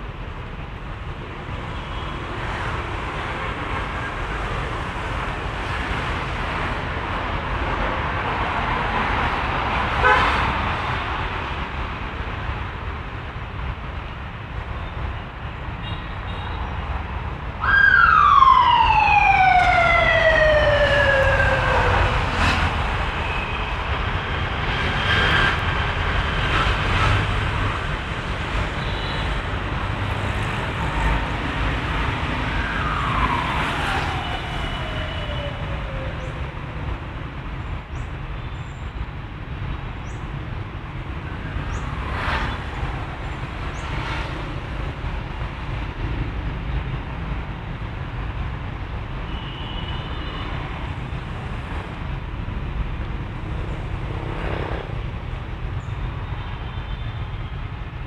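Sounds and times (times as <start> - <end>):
distant city traffic rumble: 0.0 - 58.0
siren sliding down in pitch: 17.6 - 22.4, 32.2 - 36.5.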